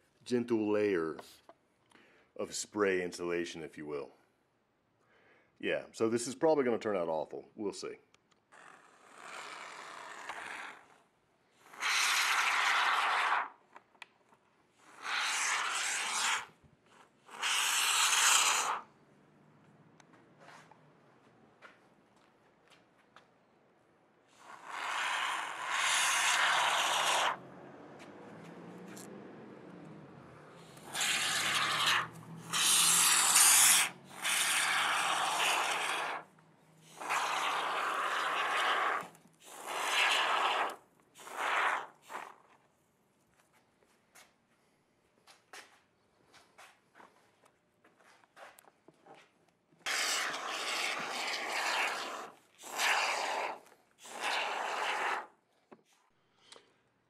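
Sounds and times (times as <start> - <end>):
spray foam can hissing: 11.6 - 13.6, 14.8 - 16.6, 17.3 - 18.9, 24.3 - 27.4, 30.6 - 36.2, 36.9 - 42.4, 49.9 - 55.3.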